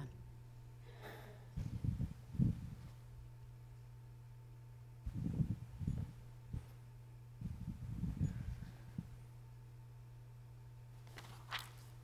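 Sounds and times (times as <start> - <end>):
steady electrical hum: 0.0 - 12.0
muffled footsteps and rustling: 1.0 - 3.4, 5.0 - 9.3, 11.0 - 12.0.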